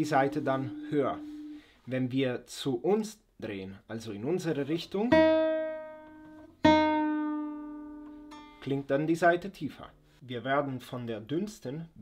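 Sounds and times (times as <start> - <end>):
guitar string plucked and ringing: 0.0 - 1.7, 5.1 - 8.7.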